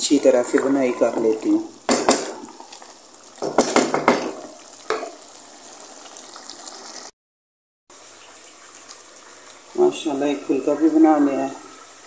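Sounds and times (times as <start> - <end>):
steady frying hiss: 0.0 - 7.1, 7.9 - 12.0.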